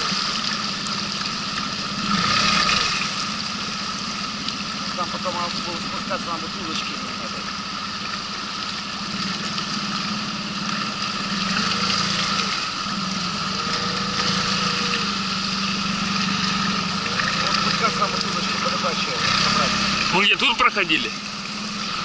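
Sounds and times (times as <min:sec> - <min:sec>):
outboard motor running: 0:00.0 - 0:22.0
water rushing past hull: 0:00.0 - 0:22.0.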